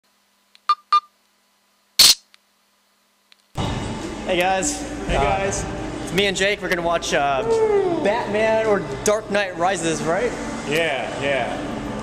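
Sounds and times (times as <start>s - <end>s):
steady background noise: 0.1s - 12.0s
camera beeps: 0.6s - 1.1s, 2.0s - 2.2s
camera shutter click: 2.0s - 2.3s.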